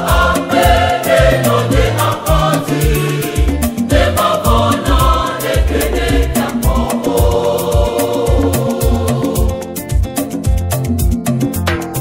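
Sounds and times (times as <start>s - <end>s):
choir singing gospel: 0.0s - 10.0s
bass line: 0.0s - 12.0s
steady drum beat: 0.0s - 12.0s.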